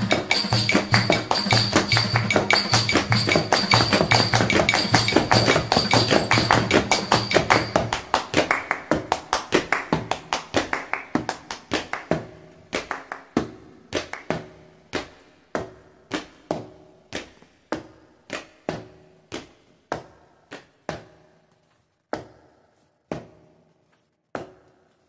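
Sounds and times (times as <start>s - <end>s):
tambourine: 0.0s - 8.4s
drum strokes: 0.0s - 11.2s
hand claps: 0.0s - 15.3s.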